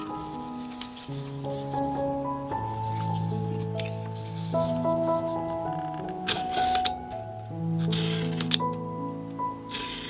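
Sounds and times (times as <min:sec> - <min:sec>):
background music sustained notes: 0:00.0 - 0:10.0.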